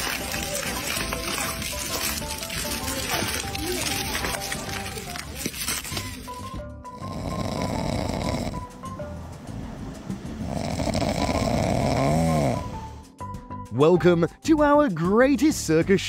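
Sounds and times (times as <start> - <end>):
walrus snoring: 6.9 - 8.8, 10.3 - 13.0.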